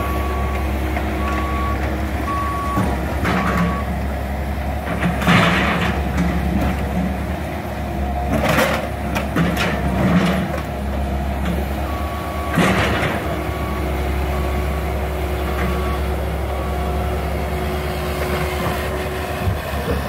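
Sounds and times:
excavators running: 0.0 - 20.0
backup alarm beeping: 1.2 - 4.0, 11.9 - 14.7.

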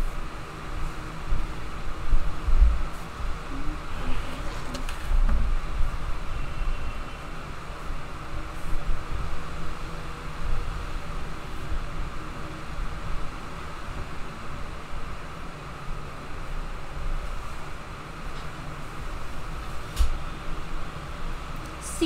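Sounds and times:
low rumble and hiss: 0.0 - 22.0.

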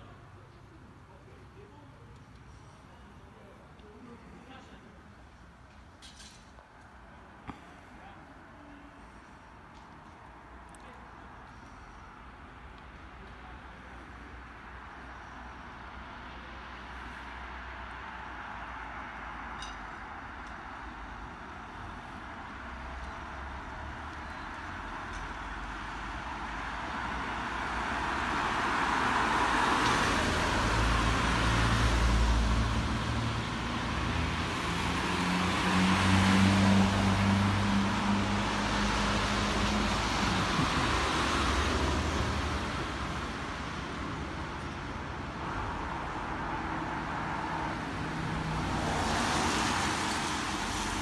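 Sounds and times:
cars driving past on wet road: 8.9 - 51.0.

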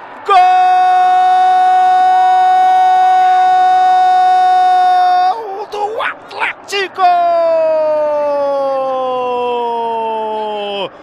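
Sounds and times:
commentator's drawn-out goal shout: 0.3 - 10.9.

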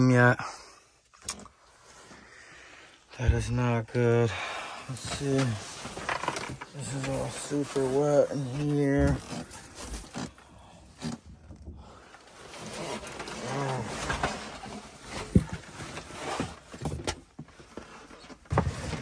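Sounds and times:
wet cardboard boxes rustling: 4.9 - 19.0.

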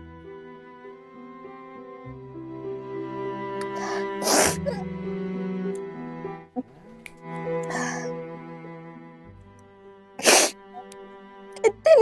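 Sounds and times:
slow bowed string music: 0.0 - 12.0
breathy bursts: 3.6 - 4.8, 7.6 - 8.2.

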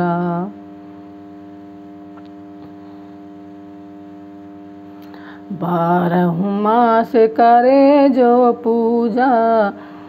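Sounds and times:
steady multi-pitch hum: 0.0 - 10.0.

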